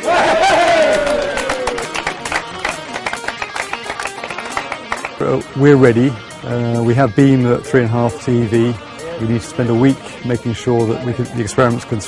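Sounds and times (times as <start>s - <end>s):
person whooping: 0.0s - 1.9s
crowd clapping: 0.1s - 5.2s.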